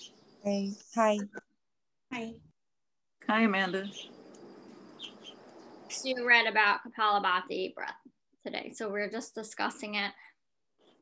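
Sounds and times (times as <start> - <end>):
bird chirps: 0.0 - 0.9, 3.6 - 6.2
outdoor background noise: 0.0 - 11.0.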